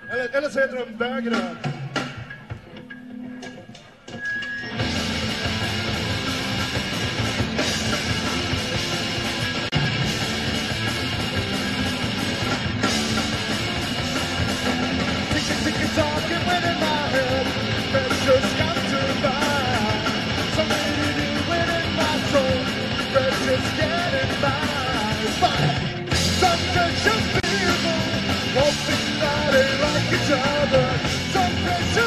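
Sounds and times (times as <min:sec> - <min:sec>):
punk rock band playing: 0:00.0 - 0:32.0
man singing into microphone: 0:15.3 - 0:32.0.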